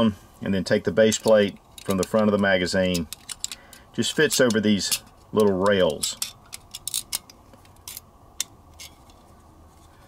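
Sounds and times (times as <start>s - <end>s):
magazine plate clicking and scraping: 1.2s - 10.0s.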